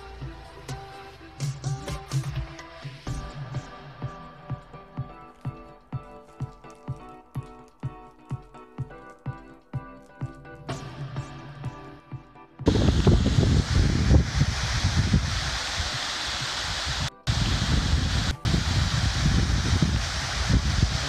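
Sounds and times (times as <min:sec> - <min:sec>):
soft background music: 0:00.0 - 0:21.0
low rumble: 0:12.7 - 0:21.0
water rushing down stone cascade: 0:12.7 - 0:21.0.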